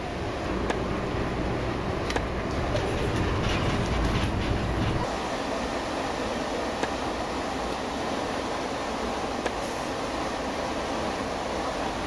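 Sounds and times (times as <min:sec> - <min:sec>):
light-rail car rumbling: 0:00.0 - 0:12.0.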